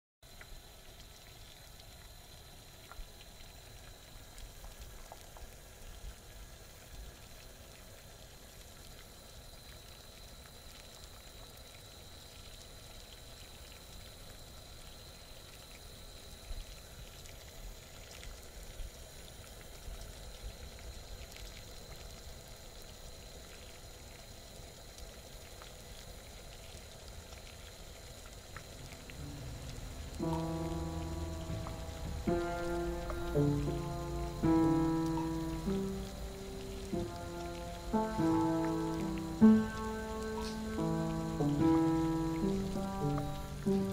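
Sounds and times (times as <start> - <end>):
low hiss with small pops: 0.2 - 43.9
water heating in a pot: 0.2 - 43.9.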